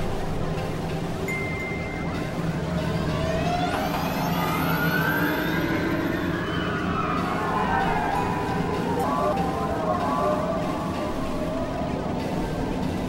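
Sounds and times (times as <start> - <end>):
synthesizer drone: 0.0 - 13.0
thin high sweeping tone: 1.3 - 11.8
gliding siren-like tones: 2.3 - 13.0.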